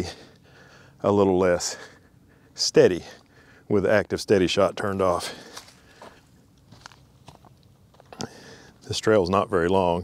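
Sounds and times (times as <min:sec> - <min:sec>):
footsteps on leafy dirt trail: 0:04.8 - 0:08.8.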